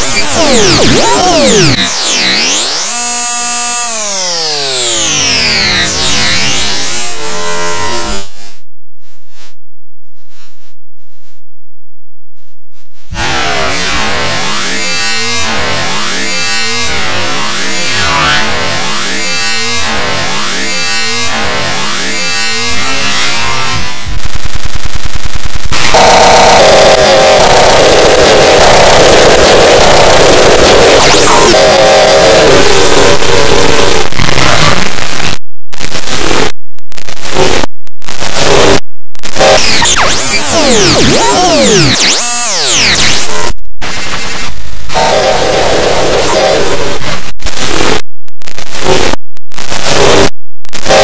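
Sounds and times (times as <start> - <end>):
dense noisy electronic burst: 0.0 - 7.2, 23.4 - 51.0
distorted electronic pitch sweeps: 0.0 - 8.3, 20.4 - 36.6, 37.2 - 51.0.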